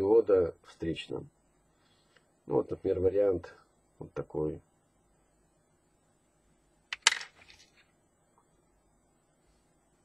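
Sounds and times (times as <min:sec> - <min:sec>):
small parts clattering in plastic tray: 0:06.9 - 0:07.8.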